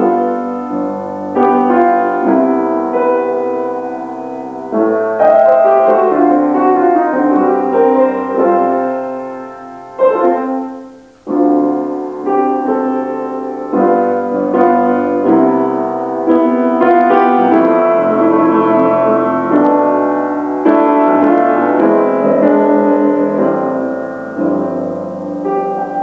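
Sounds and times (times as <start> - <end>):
slow piano chords: 0.0 - 26.0.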